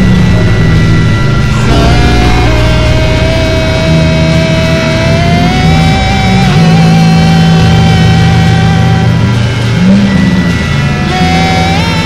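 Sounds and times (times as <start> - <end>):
distorted guitar noise: 0.0 - 12.0
high whining tone: 0.0 - 12.0
low droning notes: 0.0 - 12.0.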